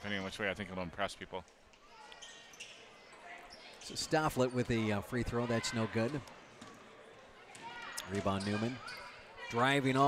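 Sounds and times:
gym crowd noise: 0.0s - 10.0s.

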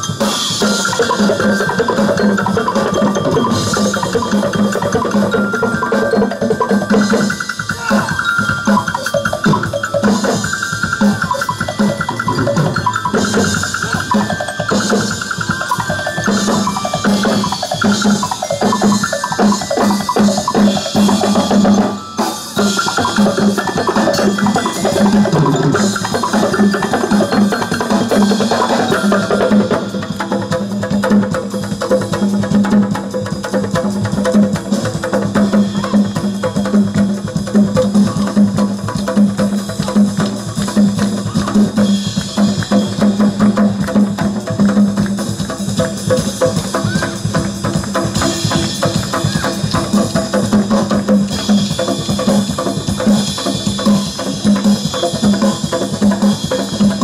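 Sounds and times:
pitched melodic part: 0.0s - 30.8s
percussion ensemble drumming: 0.0s - 57.0s.

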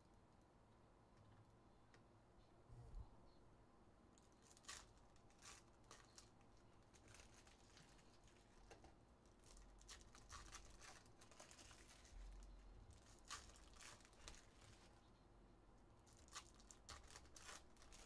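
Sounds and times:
foil wrappers crinkling and tearing: 4.2s - 15.0s, 16.0s - 18.0s.

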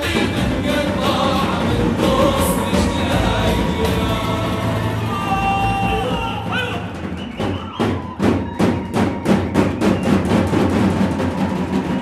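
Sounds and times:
large drums beaten with sticks: 0.0s - 12.0s.

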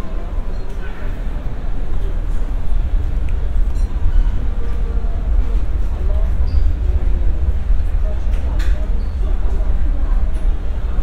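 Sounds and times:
faint murmur of voices: 0.0s - 11.0s
steady low rumble: 0.0s - 11.0s.

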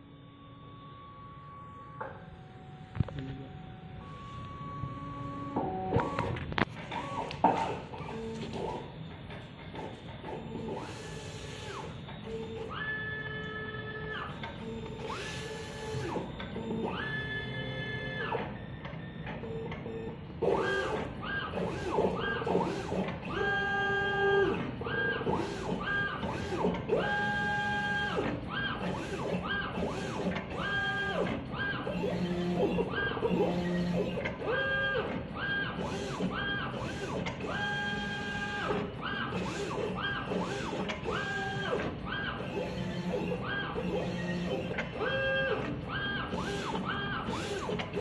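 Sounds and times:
die cutter motors whining: 20.5s - 48.0s.

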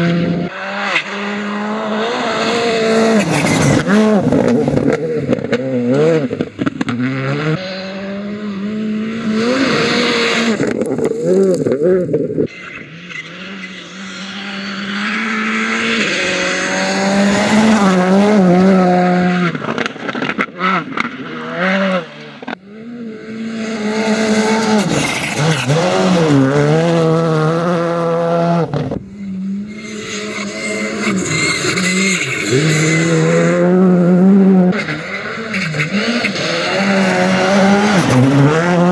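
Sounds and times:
rally car engines revving hard: 0.0s - 38.9s.

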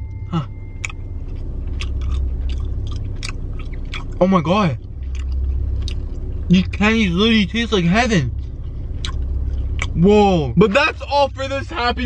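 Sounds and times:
steady low hum: 0.0s - 12.0s
person chewing candy: 0.3s - 4.2s, 5.0s - 6.2s, 9.0s - 10.0s.

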